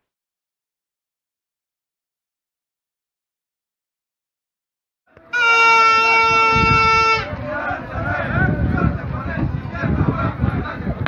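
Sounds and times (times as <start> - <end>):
horn steady note: 5.2 - 7.4.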